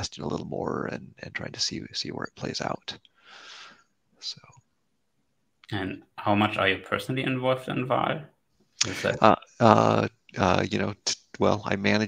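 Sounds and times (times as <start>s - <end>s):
breathy exhalation: 3.1s - 4.0s.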